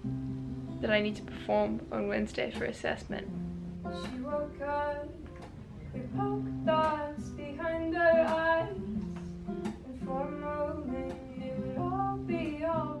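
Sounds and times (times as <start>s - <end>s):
acoustic guitar strumming: 0.0s - 13.0s
woman singing: 3.8s - 13.0s.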